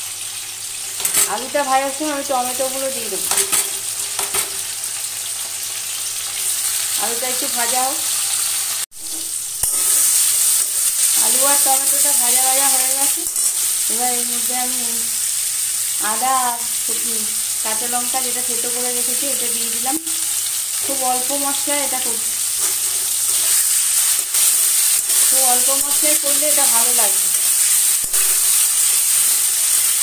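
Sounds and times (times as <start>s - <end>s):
food sizzling in hot oil: 0.0s - 30.0s
metal spatula stirring: 1.0s - 1.4s, 22.6s - 29.9s.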